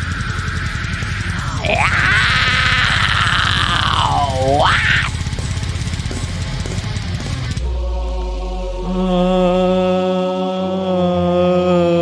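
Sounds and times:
held low sustained tone: 0:00.0 - 0:05.0, 0:07.6 - 0:12.0
high vocal squeal: 0:00.0 - 0:05.1
fast drumming: 0:00.0 - 0:07.6
extreme metal song: 0:00.0 - 0:10.2.

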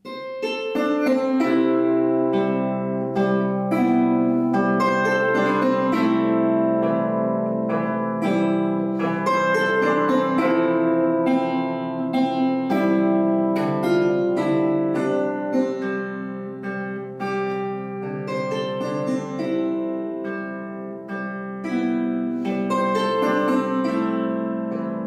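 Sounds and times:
plucked zither melody: 0:00.0 - 0:25.0.

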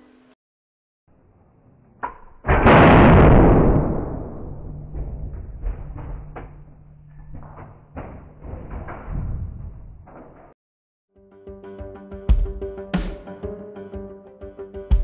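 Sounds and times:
scattered knocks and clatters: 0:04.8 - 0:10.5.

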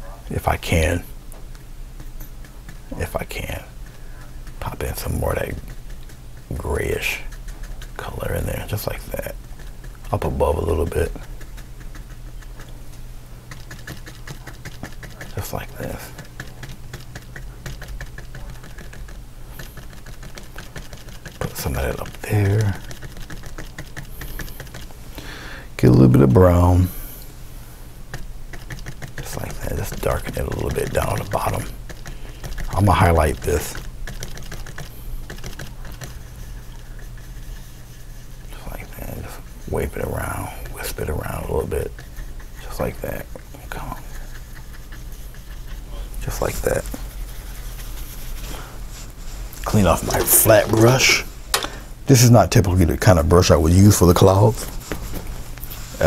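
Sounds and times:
steady low hum: 0:00.0 - 0:56.0
paintbrush dabbing and scrubbing: 0:00.3 - 0:25.2, 0:28.1 - 0:51.5
paintbrush swishing on surface: 0:33.2 - 0:51.5.

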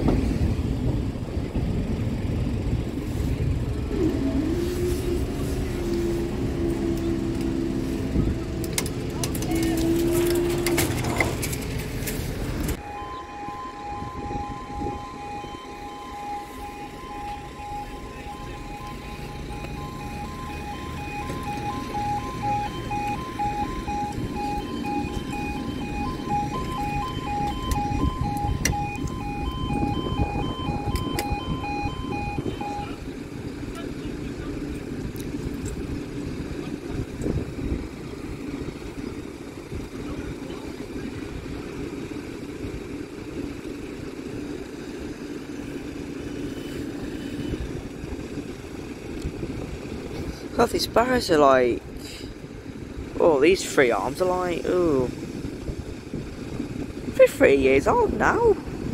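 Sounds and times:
diesel train engine rumble: 0:00.0 - 0:58.9
level crossing alarm yodel: 0:12.8 - 0:33.1.

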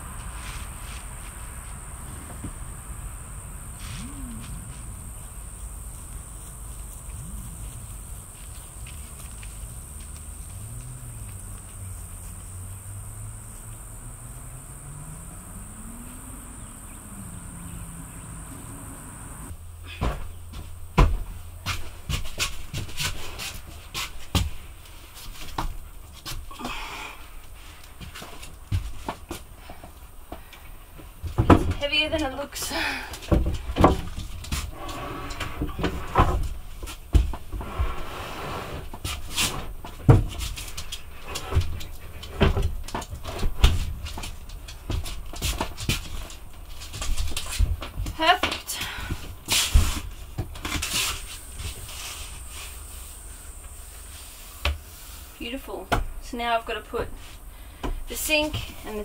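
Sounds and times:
insect drone: 0:00.0 - 0:19.6, 0:50.9 - 0:55.4
wooden knocks and clatter: 0:31.1 - 0:31.8.

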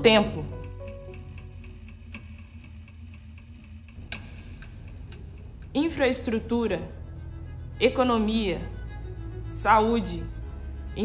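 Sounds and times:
low hum: 0:00.0 - 0:11.0
clock ticking: 0:00.2 - 0:05.8.

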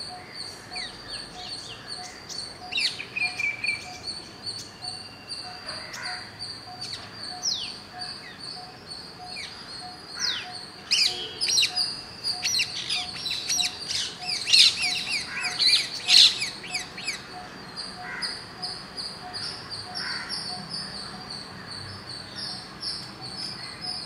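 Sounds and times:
parakeets chirping shrilly: 0:12.5 - 0:16.8.

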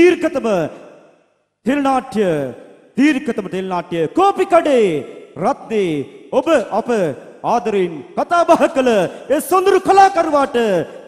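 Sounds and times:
man talking: 0:00.0 - 0:01.0, 0:01.6 - 0:11.0.

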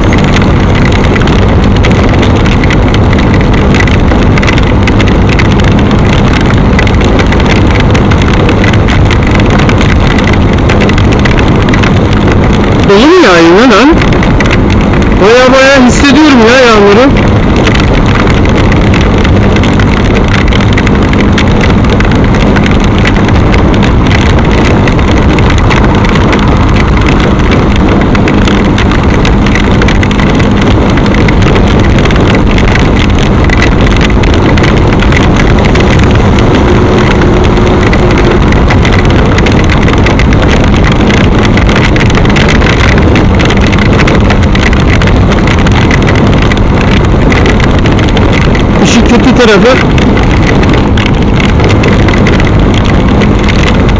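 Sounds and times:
motorcycle engine running: 0:00.0 - 0:53.9
wind rush on microphone: 0:00.0 - 0:53.9.

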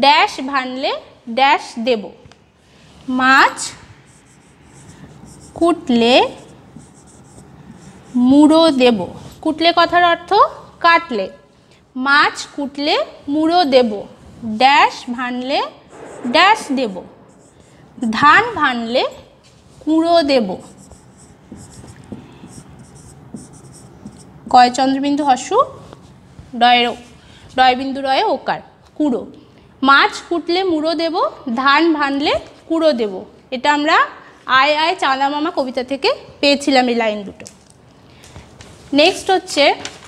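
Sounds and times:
marker squeaking on whiteboard: 0:03.5 - 0:08.8, 0:17.2 - 0:18.6, 0:20.2 - 0:24.8.

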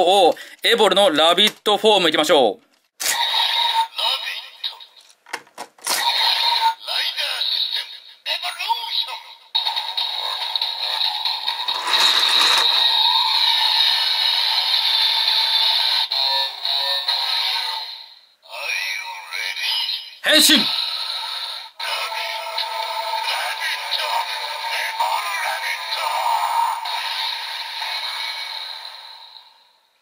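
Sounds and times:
toy electronic voice: 0:05.9 - 0:11.0, 0:11.6 - 0:13.0, 0:13.6 - 0:17.9, 0:18.5 - 0:28.6
tinny transformation music: 0:11.1 - 0:13.6
toy clicking: 0:11.6 - 0:12.9.

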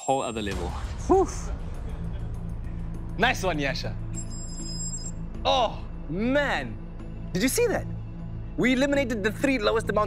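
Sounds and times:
low sustained background music: 0:00.0 - 0:10.0.

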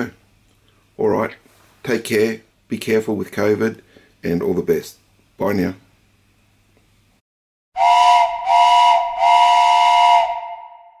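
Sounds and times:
steam whistle blasts: 0:07.8 - 0:11.0.

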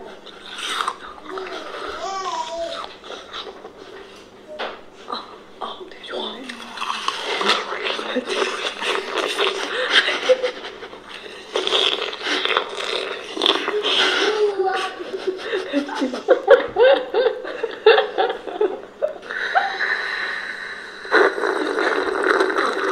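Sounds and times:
women talking: 0:05.1 - 0:09.4, 0:13.6 - 0:16.9
light laughter: 0:07.4 - 0:11.6, 0:13.5 - 0:20.2.

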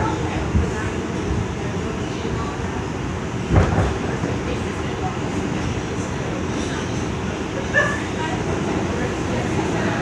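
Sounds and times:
subway car rumbling on track: 0:00.0 - 0:10.0.

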